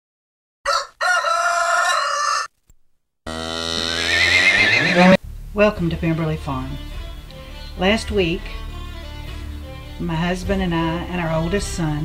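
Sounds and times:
rooster crowing: 0:00.6 - 0:02.5, 0:03.3 - 0:05.2
horse whinnying: 0:03.3 - 0:05.2.

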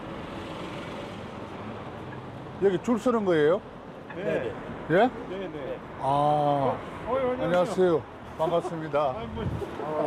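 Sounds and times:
distant road traffic: 0:00.0 - 0:10.0.

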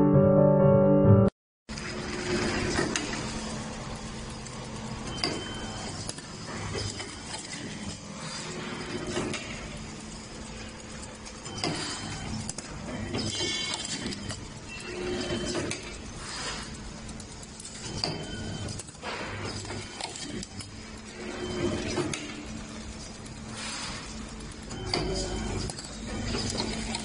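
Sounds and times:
machine humming: 0:01.7 - 0:27.0
mechanical clicks and clacks: 0:01.7 - 0:27.0
short machine squeaks: 0:05.0 - 0:07.7, 0:11.4 - 0:16.7, 0:17.6 - 0:20.4, 0:21.2 - 0:22.5.

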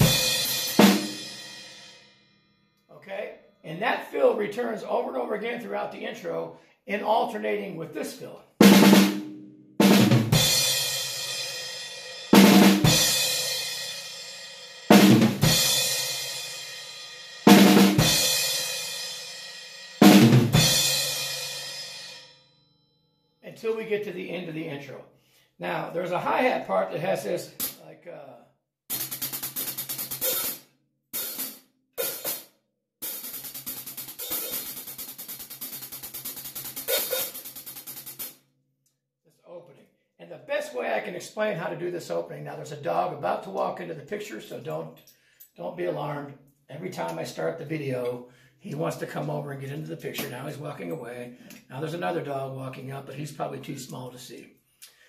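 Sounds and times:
drum fills: 0:00.0 - 0:01.7, 0:08.6 - 0:11.7, 0:12.3 - 0:14.2, 0:14.9 - 0:16.6, 0:17.5 - 0:19.2, 0:20.0 - 0:21.5, 0:28.9 - 0:30.6, 0:33.0 - 0:38.3
hi-hat played with sticks: 0:00.0 - 0:02.0, 0:08.8 - 0:22.2, 0:27.6 - 0:27.8, 0:28.9 - 0:38.4.

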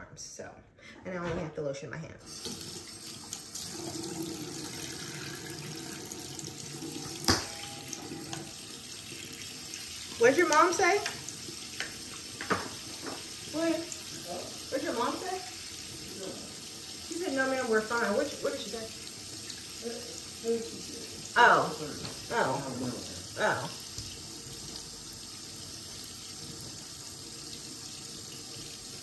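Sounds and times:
bathroom tap running: 0:02.3 - 0:29.0
face being washed with water: 0:02.3 - 0:29.0.

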